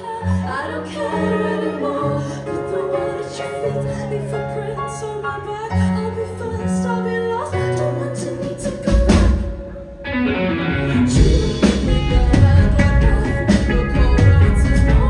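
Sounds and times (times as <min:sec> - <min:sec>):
woman singing: 0:00.0 - 0:09.8, 0:11.0 - 0:15.0
drums: 0:05.8 - 0:15.0
rock band playing: 0:07.9 - 0:15.0
electric guitar: 0:08.9 - 0:15.0.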